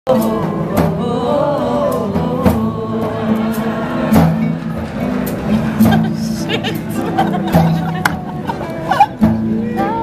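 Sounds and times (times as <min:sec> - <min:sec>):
sharp percussive strikes: 0:01.9 - 0:09.6.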